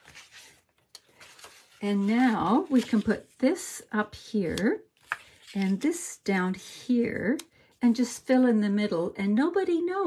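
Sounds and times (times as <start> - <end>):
paper rustling: 0.0 - 3.4, 5.0 - 5.8.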